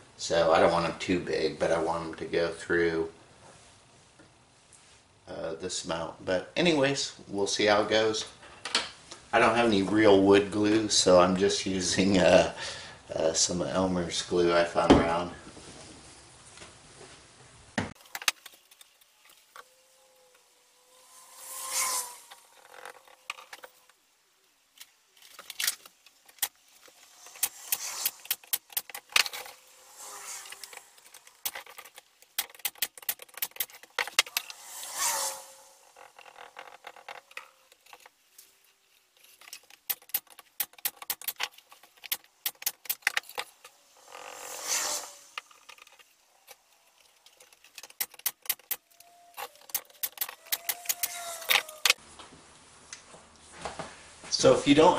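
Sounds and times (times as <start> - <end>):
wood pieces clicking and knocking: 18.0 - 19.6, 25.2 - 29.6, 30.6 - 34.4, 39.2 - 43.7, 45.6 - 52.0
glue bottle squirting: 25.4 - 38.1, 39.3 - 52.0.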